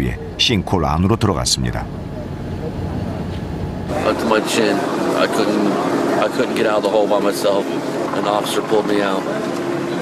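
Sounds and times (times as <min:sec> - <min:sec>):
street noise rumble: 0:00.0 - 0:10.0.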